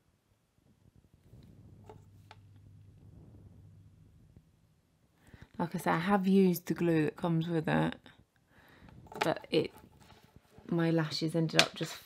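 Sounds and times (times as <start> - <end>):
faint low hum: 0.0 - 11.4.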